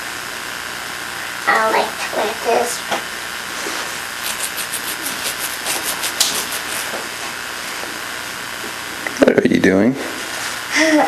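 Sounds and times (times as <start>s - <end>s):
camcorder tape hiss: 0.0s - 9.7s.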